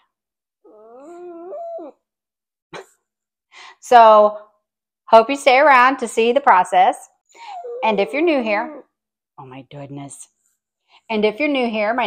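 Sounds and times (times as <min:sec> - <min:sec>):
small dog howling: 0:00.6 - 0:02.0, 0:07.5 - 0:08.8.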